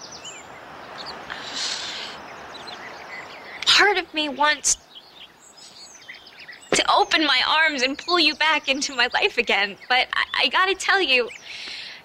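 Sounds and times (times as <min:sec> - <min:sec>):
woman speaking: 0:03.6 - 0:04.8, 0:06.7 - 0:11.4.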